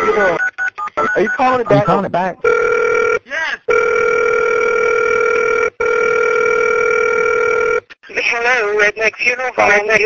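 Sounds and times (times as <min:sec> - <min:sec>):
telephone ringback tone: 0:00.0 - 0:07.8.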